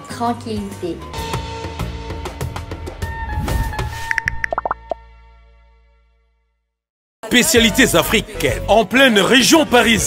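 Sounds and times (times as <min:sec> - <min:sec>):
short bubbly pops: 0:04.1 - 0:05.0.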